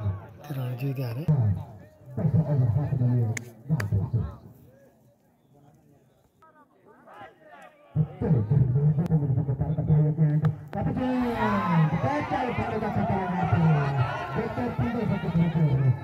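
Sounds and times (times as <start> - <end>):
men talking and calling out: 0.0 - 16.0.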